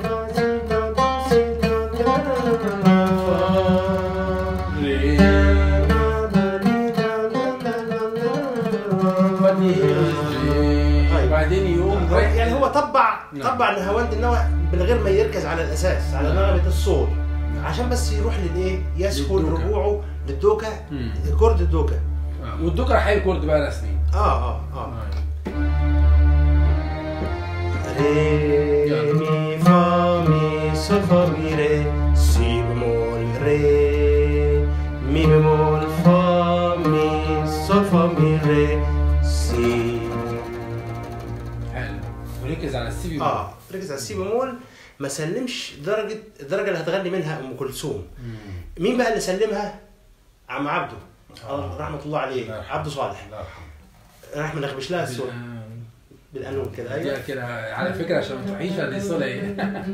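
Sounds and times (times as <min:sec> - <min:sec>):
oud playing: 0:00.0 - 0:44.1, 0:57.8 - 0:59.9
man humming: 0:02.8 - 0:12.4, 0:20.8 - 0:21.4, 0:27.7 - 0:42.2
man singing slow melody: 0:03.0 - 0:07.6, 0:08.2 - 0:12.2, 0:27.8 - 0:41.0
keyboard bass notes and chords: 0:20.8 - 0:43.2.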